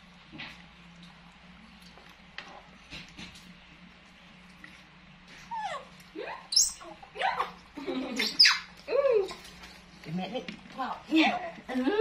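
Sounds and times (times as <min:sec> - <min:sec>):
baby monkey squeaky calls: 0:06.5 - 0:07.0, 0:08.2 - 0:08.7.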